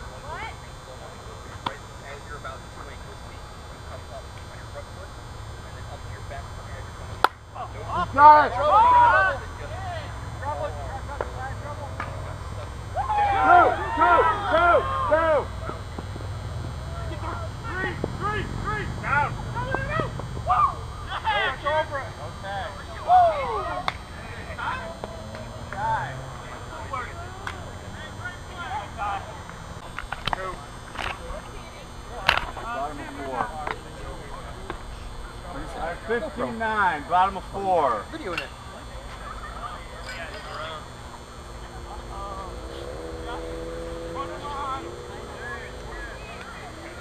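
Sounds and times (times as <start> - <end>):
players calling and chattering: 0.0 - 47.0.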